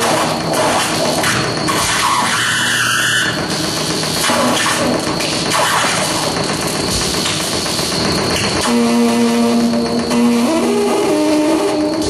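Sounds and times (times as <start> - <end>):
harsh electronic noise: 0.0 - 12.0.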